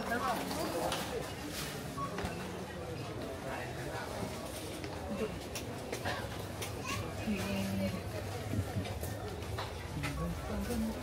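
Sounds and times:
indistinct chatter of shoppers: 0:00.0 - 0:11.0.

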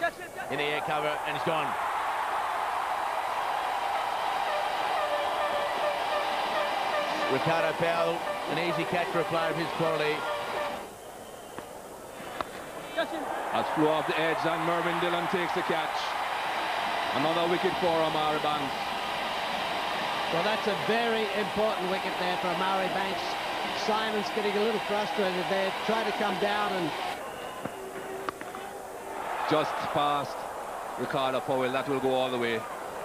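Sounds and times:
stadium crowd noise: 0:00.0 - 0:33.0
crowd murmur: 0:04.2 - 0:11.0.

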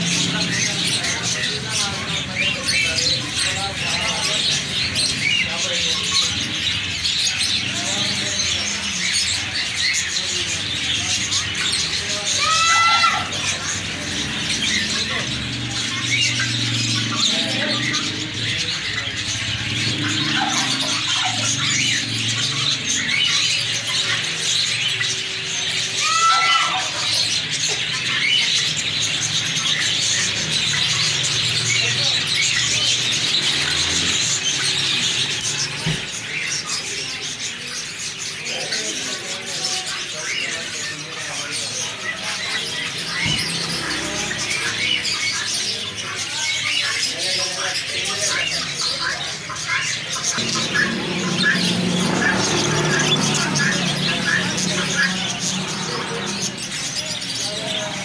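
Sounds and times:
caged birds chirping: 0:00.0 - 0:58.0.

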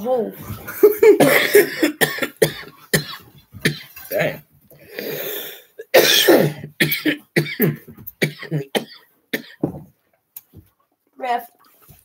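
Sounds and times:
man coughing: 0:01.1 - 0:04.4, 0:05.8 - 0:09.7
breathy exhale: 0:04.9 - 0:05.7.

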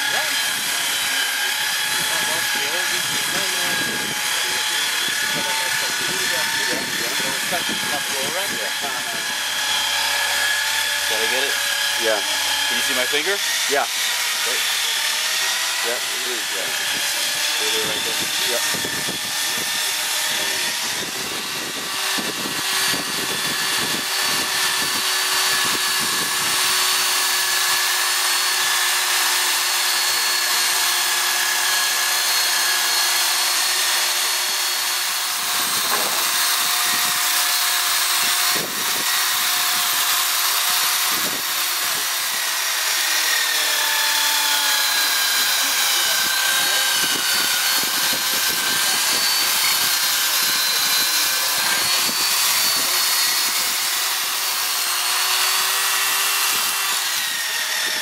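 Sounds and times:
power tool whine: 0:00.0 - 0:58.0.

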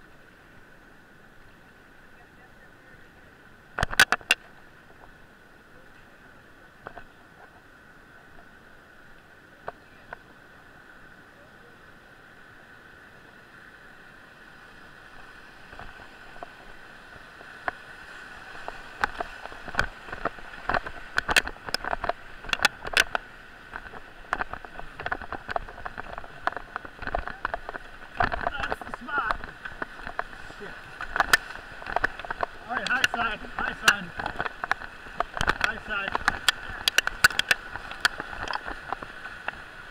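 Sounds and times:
whitewater rushing: 0:10.6 - 0:39.9
water splashing against raft: 0:14.4 - 0:39.9.

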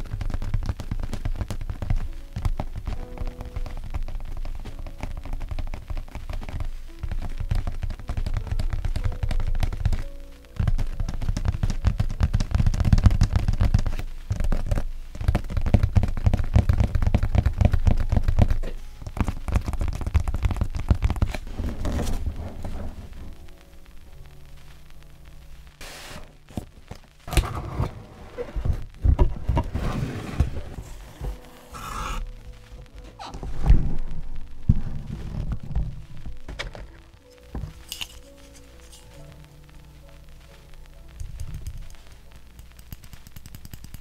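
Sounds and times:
fingertips tapping cardboard box: 0:00.0 - 0:22.8.

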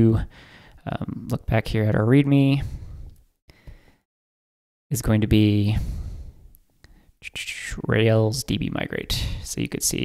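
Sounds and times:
man speaking: 0:00.0 - 0:02.8, 0:04.9 - 0:06.0, 0:07.2 - 0:10.0.

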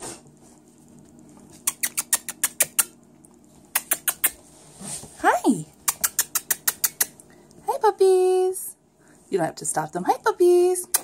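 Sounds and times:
person making kissing noises: 0:01.6 - 0:03.0, 0:03.7 - 0:04.4, 0:05.8 - 0:07.2.

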